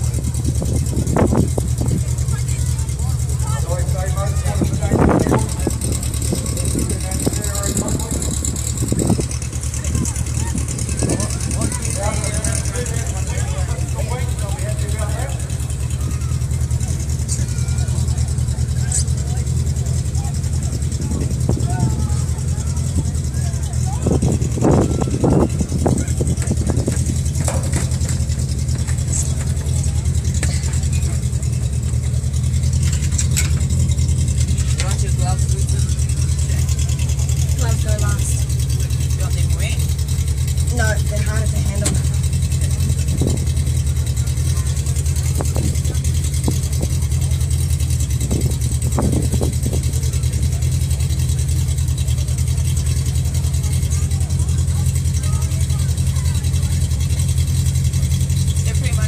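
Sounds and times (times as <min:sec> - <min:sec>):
faint voices: 0:00.0 - 0:59.0
vehicle engine idling: 0:00.0 - 0:59.0.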